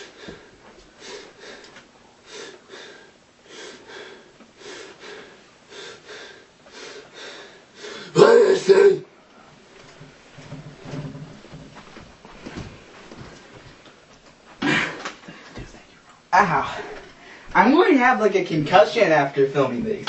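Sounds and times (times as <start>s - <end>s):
man's wordless vocal bursts: 7.8s - 9.1s
man shouting: 8.1s - 9.1s.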